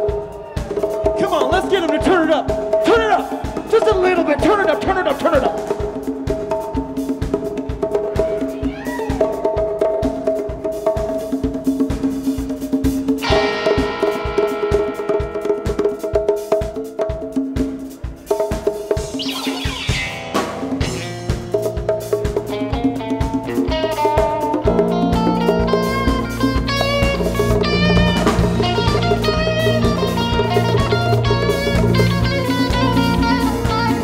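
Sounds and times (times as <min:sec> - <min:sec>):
drum kit beat: 0:00.0 - 0:34.0
rock band playing live: 0:00.0 - 0:34.0.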